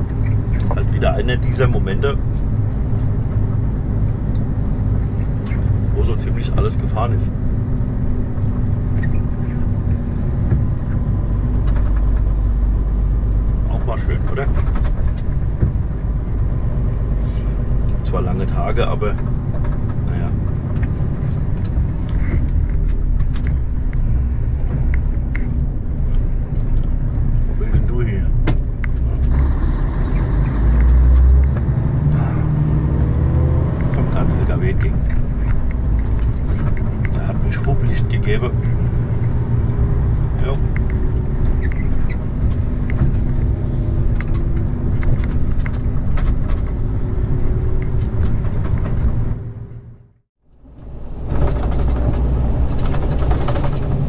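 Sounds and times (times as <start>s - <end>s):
diesel engine drone: 0.0s - 54.0s
road noise: 0.0s - 54.0s.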